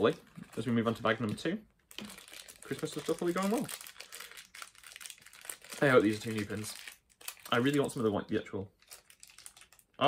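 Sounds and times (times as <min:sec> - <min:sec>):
person speaking: 0:00.0 - 0:04.1, 0:05.6 - 0:08.8
plastic packaging crinkling: 0:00.0 - 0:10.0.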